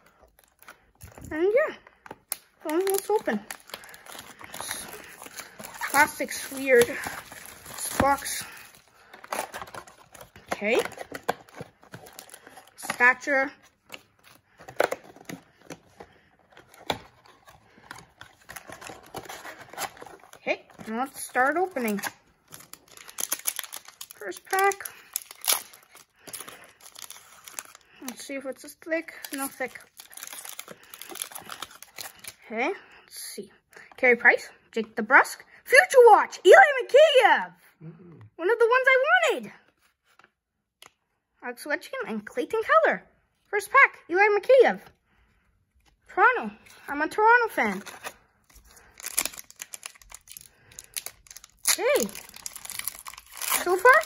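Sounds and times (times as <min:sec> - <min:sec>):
foil wrapper tearing and crinkling: 0:02.3 - 0:12.8, 0:21.3 - 0:28.0, 0:29.2 - 0:32.4, 0:47.7 - 0:54.0.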